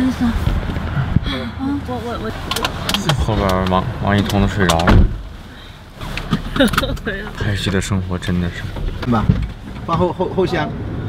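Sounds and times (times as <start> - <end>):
sharp clicks and knocks: 2.4 - 5.2.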